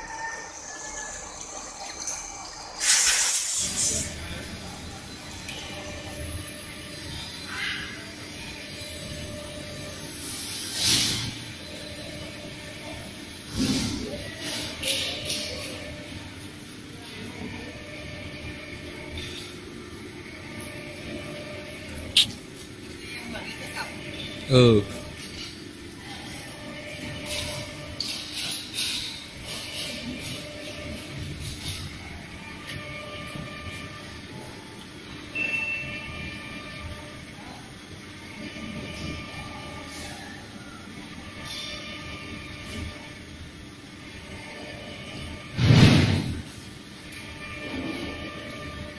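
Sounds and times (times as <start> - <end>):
gear whine: 0.0 - 15.9.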